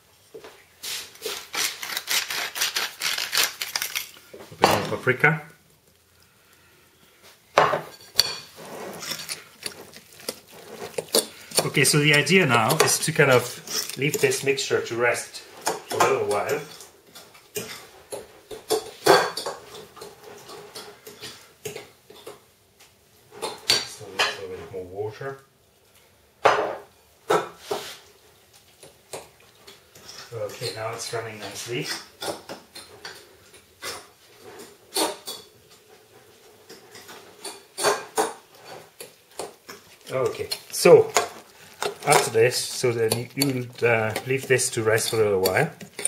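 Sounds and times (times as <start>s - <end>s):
utensil scraping batter in bowl: 7.9s - 18.2s, 32.7s - 46.0s
utensil clinking against bowl: 39.0s - 46.0s.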